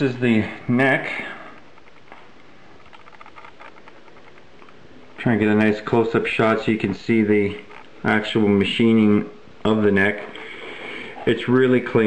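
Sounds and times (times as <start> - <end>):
low room hiss: 0.0 - 12.0
faint ticks and rustles: 1.4 - 5.3.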